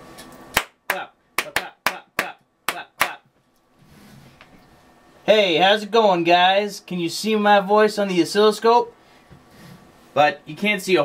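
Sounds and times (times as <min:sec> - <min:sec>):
hand clapping: 0:00.5 - 0:03.2.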